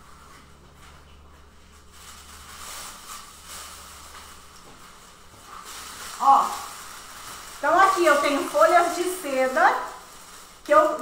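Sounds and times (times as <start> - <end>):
tissue paper rustling and crinkling: 1.6 - 11.0.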